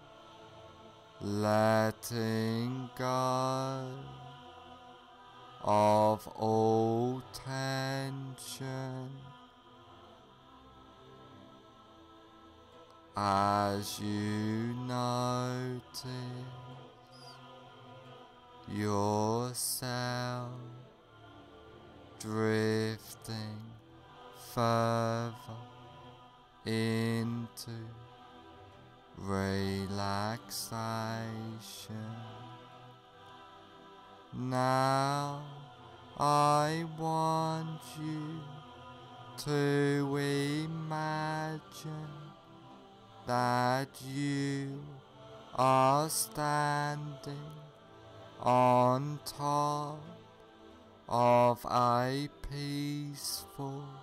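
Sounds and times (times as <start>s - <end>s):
deep chanted vocal drone: 0.0s - 54.0s
meditation music: 0.0s - 54.0s.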